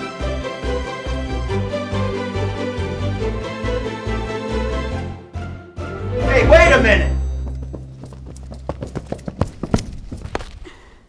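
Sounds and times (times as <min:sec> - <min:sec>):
music: 0:00.0 - 0:09.4
running footsteps: 0:06.4 - 0:11.0.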